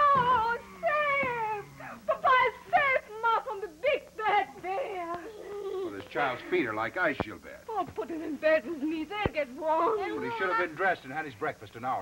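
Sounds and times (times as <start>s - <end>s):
small child crying: 4.8s - 6.1s.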